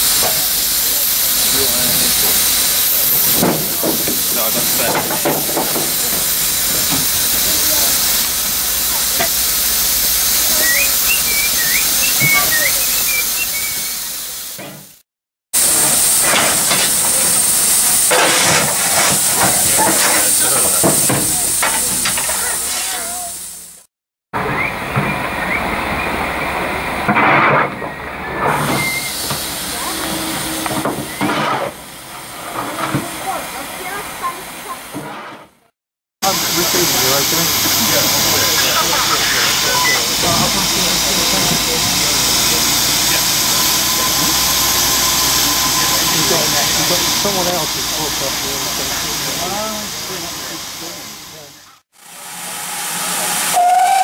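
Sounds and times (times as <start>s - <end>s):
steam locomotive hissing: 0.0s - 15.0s, 15.6s - 35.6s, 36.2s - 54.0s
coal shovel scraping and clattering: 18.0s - 20.4s, 27.1s - 27.7s, 30.7s - 31.8s, 35.0s - 35.5s.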